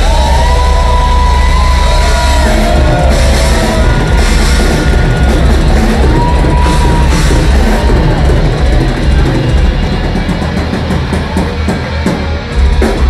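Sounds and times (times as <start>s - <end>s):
bass guitar: 0.0s - 13.0s
distorted guitars: 0.0s - 13.0s
drum kit: 0.0s - 13.0s.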